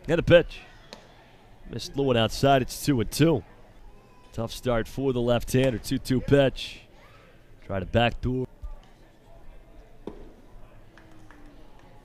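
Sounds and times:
faint crowd noise: 0.0 - 12.0
baseball smacking into a mitt: 10.0 - 10.4.

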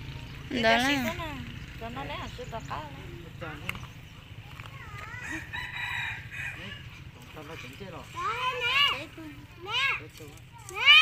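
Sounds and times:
rooster crowing: 5.1 - 7.0.

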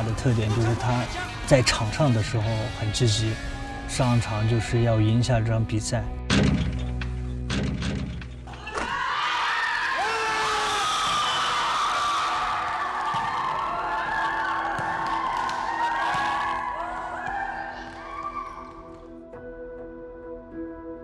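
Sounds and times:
background music: 0.0 - 9.0, 12.2 - 21.0
children cheering and shouting: 8.5 - 19.0.

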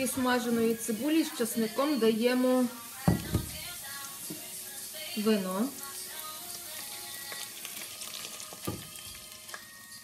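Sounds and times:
onion and garlic sizzling: 0.0 - 10.0
frying pan knocking on stove: 3.0 - 3.7.

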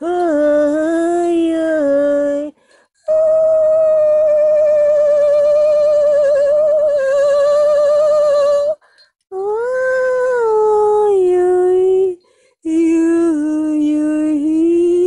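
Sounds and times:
woman singing with vibrato: 0.0 - 15.0.

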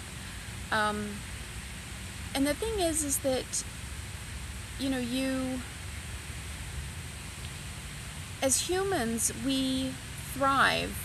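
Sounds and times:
even hiss: 0.0 - 11.0.

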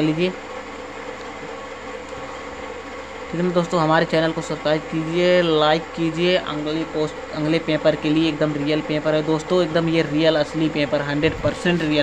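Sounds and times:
low room hum and hiss: 0.0 - 12.0.

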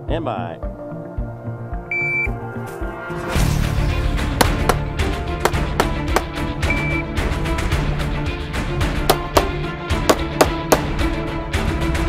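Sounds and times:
background music with beat: 0.0 - 12.0
timer beep: 1.9 - 2.4, 6.6 - 7.0.

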